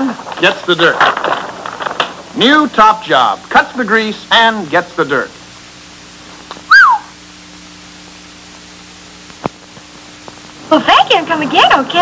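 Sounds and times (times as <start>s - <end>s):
short whistle: 6.7s - 7.2s.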